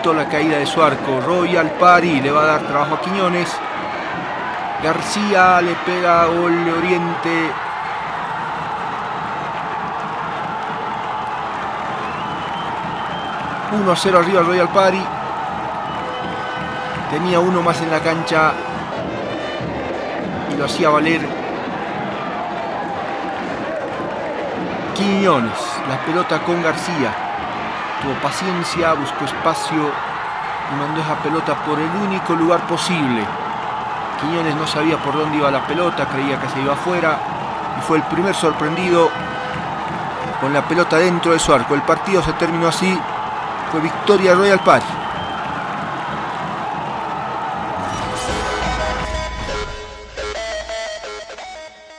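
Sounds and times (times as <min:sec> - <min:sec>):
stadium ambience: 0:00.0 - 0:51.9
music with deep bass: 0:47.8 - 0:51.8.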